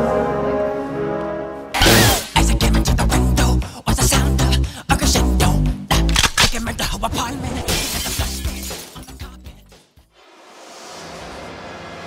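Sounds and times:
background music: 0.0 - 12.0
glass shattering: 7.7 - 9.1.

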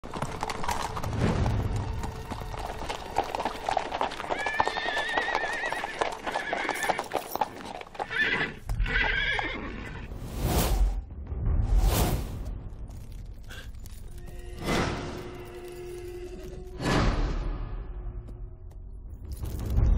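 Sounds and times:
hooves on cobblestones: 0.0 - 9.5
horses whinnying: 2.6 - 10.1.

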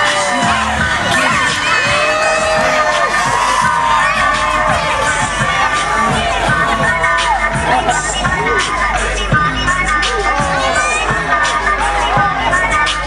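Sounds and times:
crowd cheering and screaming: 0.0 - 13.0
dance music with pulsing bass: 0.0 - 13.0.

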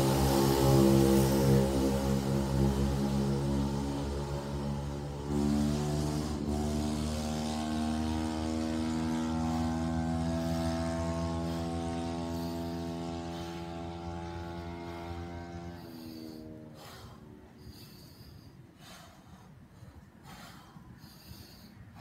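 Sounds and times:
low drone: 0.0 - 22.0.

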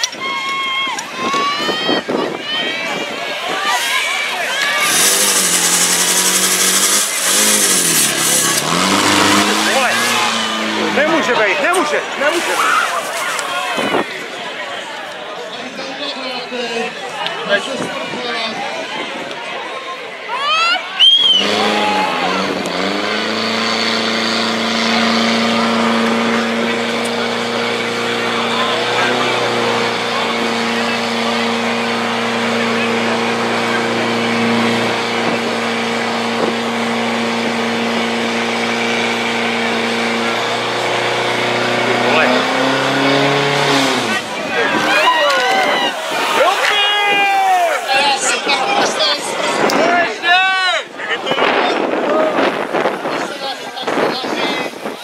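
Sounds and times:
people shouting: 0.0 - 7.2, 7.9 - 14.0, 20.3 - 23.0, 44.0 - 50.9
pump engine droning: 3.4 - 13.6, 21.2 - 49.5.

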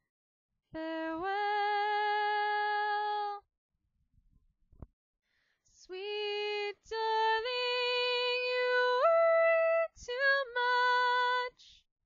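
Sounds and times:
breath: 5.2 - 5.7.

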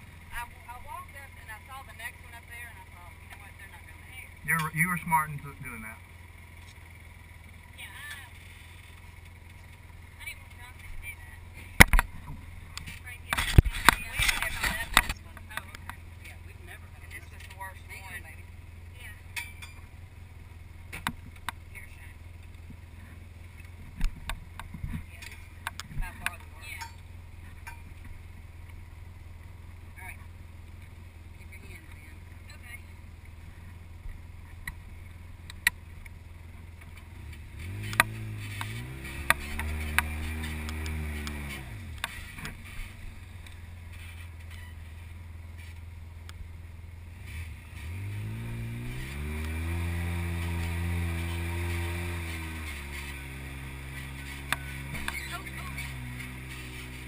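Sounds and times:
vehicle engine running and revving: 0.0 - 57.0.

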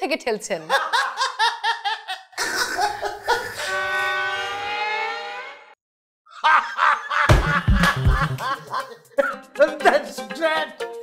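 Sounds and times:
hearty laughter: 0.7 - 3.8, 6.3 - 9.4.

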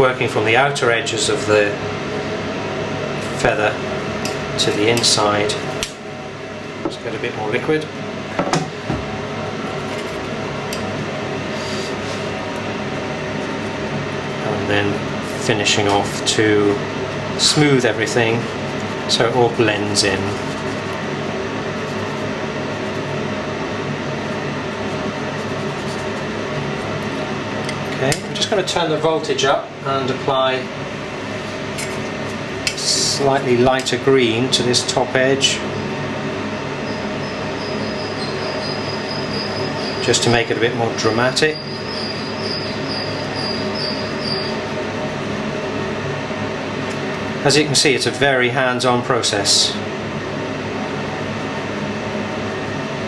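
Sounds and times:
fan whirring: 0.0 - 53.0
steady mechanical hum: 0.0 - 53.0
faint high whine: 36.7 - 44.8.

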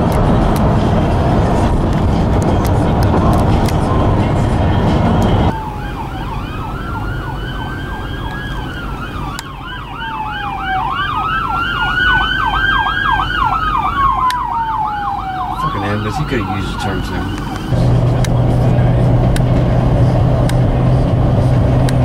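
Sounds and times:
road noise rush: 0.0 - 22.0
ambulance siren wailing and yelping: 5.5 - 17.7.

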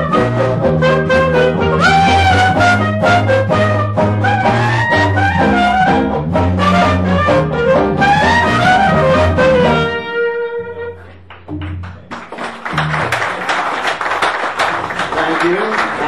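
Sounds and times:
clarinet melody: 0.0 - 11.3
walking string bass: 0.0 - 13.1.

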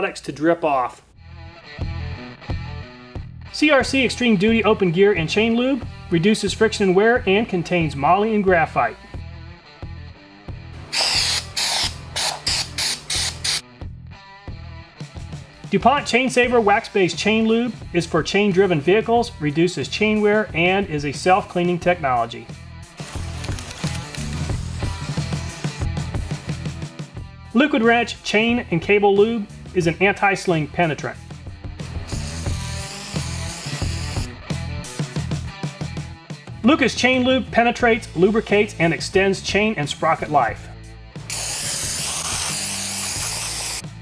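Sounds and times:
background music: 0.0 - 44.0
aerosol can hissing bursts: 10.9 - 13.6, 24.2 - 25.9, 32.1 - 34.3, 41.2 - 44.0.

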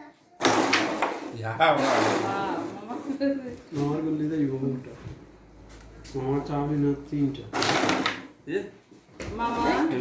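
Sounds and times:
wooden discs clattering: 7.5 - 8.3.

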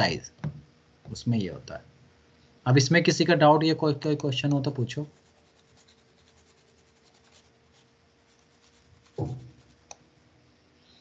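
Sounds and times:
steady low hum: 0.0 - 11.0
faint light scratching: 5.0 - 10.0.

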